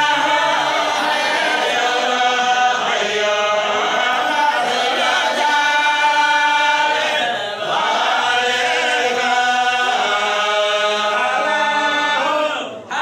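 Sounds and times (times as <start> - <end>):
group singing in unison: 0.0 - 13.0.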